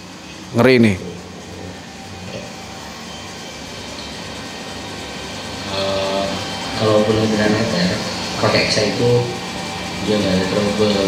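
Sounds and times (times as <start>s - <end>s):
mechanical hum and rumble: 0.0s - 11.0s.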